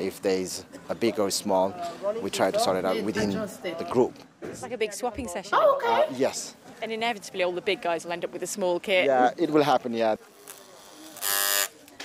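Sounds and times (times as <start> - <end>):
electric hair clippers buzzing: 10.4 - 11.7.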